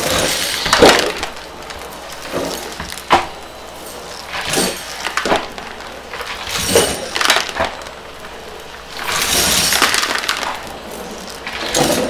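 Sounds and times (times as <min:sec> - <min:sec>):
debris clattering up vacuum wand: 0:00.0 - 0:12.0.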